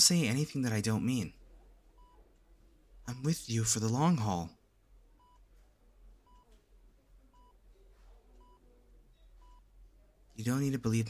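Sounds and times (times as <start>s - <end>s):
faint low hum: 0.0s - 11.0s
patient monitor beeping: 2.0s - 2.3s, 5.2s - 5.6s, 6.2s - 6.6s, 7.2s - 9.8s.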